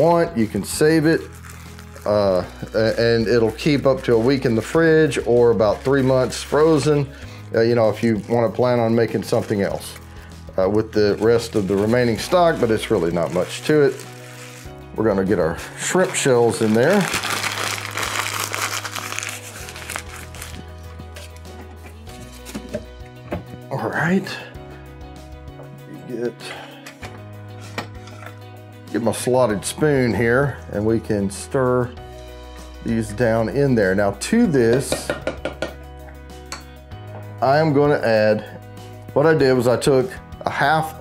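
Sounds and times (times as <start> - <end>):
soft background music: 0.0 - 41.0
plastic bag crinkling: 1.1 - 3.1, 10.7 - 14.8, 15.6 - 21.5.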